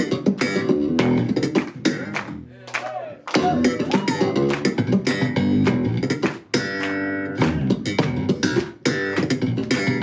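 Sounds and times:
slap bass guitar: 0:00.0 - 0:10.0.

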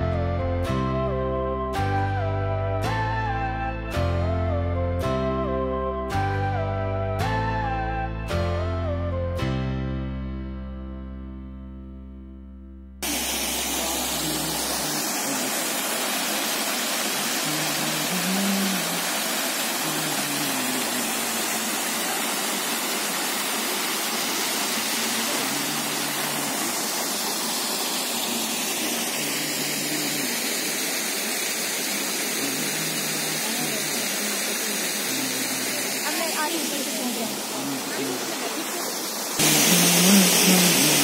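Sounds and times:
waterfall rushing: 0:13.0 - 0:41.0.

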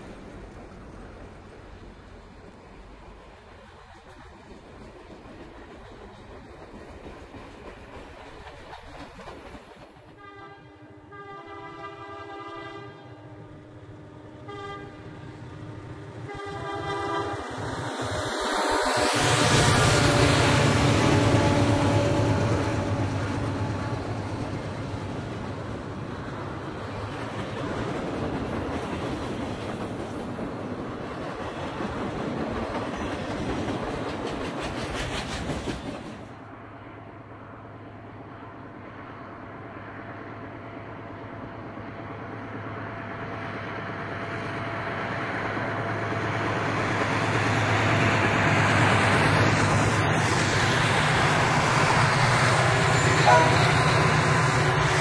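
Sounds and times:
wheels clacking over rail joints: 0:00.0 - 0:10.3, 0:19.2 - 0:36.4
train passing: 0:00.0 - 0:55.0
locomotive air horn blasts: 0:10.2 - 0:15.3, 0:16.2 - 0:17.5, 0:52.6 - 0:55.0.

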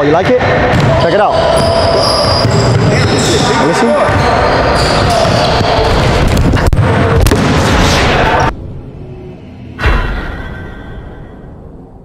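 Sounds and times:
busy gym noise: 0:00.0 - 0:11.6
basketballs bouncing: 0:00.7 - 0:07.6
heavy boom sound effect: 0:06.0 - 0:08.6, 0:09.7 - 0:12.0.

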